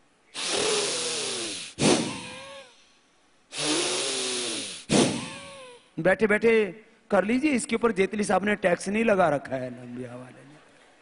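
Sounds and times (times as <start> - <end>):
sharp burst of breath: 0.3 - 5.8
forceful breathing into microphone: 0.4 - 2.8.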